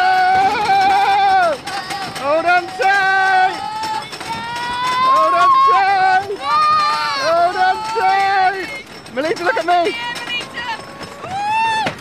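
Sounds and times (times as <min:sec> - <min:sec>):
roller coaster riders screaming: 0:00.0 - 0:12.0
rush of ride noise: 0:00.0 - 0:12.0.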